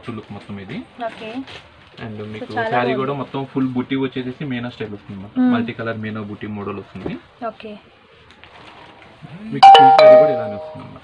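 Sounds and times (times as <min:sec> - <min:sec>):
two-note doorbell chime: 0:09.6 - 0:11.0.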